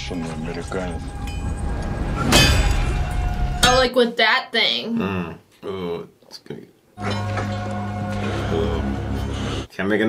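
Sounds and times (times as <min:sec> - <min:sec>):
low rumble: 0:00.0 - 0:03.9.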